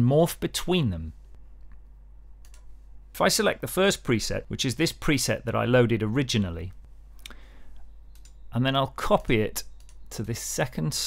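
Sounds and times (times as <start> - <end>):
low steady hum: 0.0 - 11.0
computer mouse clicks: 2.4 - 2.7, 8.1 - 8.4, 9.6 - 10.1.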